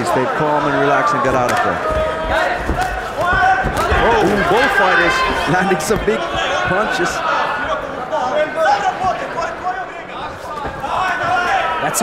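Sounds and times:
crowd shouting: 0:00.0 - 0:12.0
dull thuds: 0:01.8 - 0:04.5.

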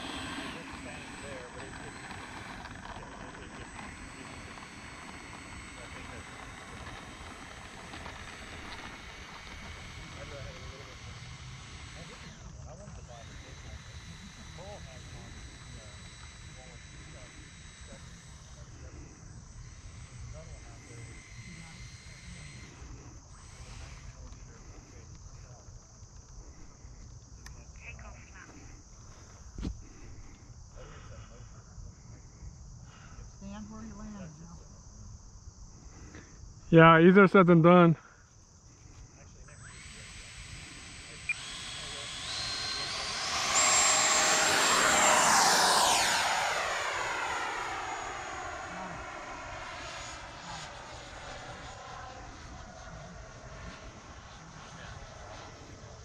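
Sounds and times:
insect chorus chirring: 0:25.3 - 0:54.4.

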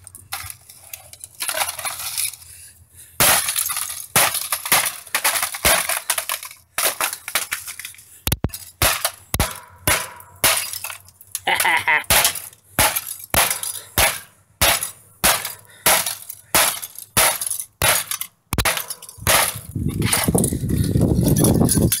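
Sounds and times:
broken plastic crunching and clinking: 0:00.0 - 0:02.6, 0:03.2 - 0:22.0
laptop being smashed: 0:03.2 - 0:11.1, 0:12.1 - 0:20.4.

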